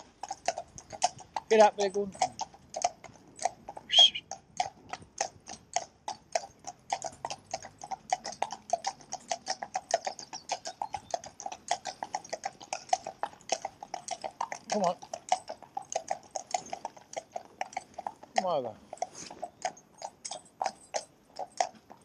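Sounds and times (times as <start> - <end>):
hooves clip-clopping on tarmac: 0.0 - 22.0.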